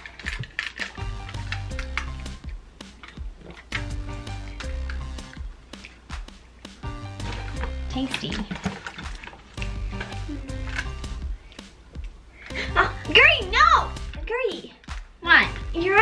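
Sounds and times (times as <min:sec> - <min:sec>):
upbeat music with bass line: 0:00.9 - 0:14.2.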